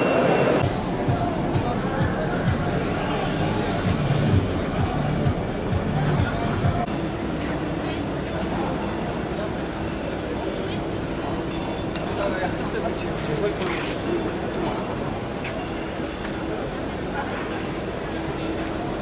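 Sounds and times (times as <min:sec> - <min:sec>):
people talking and moving about: 0:00.0 - 0:19.0.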